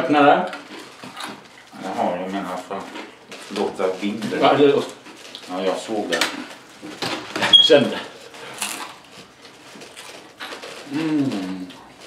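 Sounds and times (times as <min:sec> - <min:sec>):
person humming: 0:10.9 - 0:11.8.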